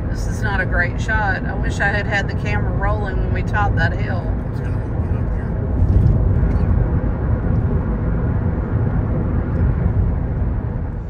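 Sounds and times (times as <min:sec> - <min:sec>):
car road and engine rumble: 0:00.0 - 0:11.0
tyre and wind noise: 0:05.5 - 0:11.0.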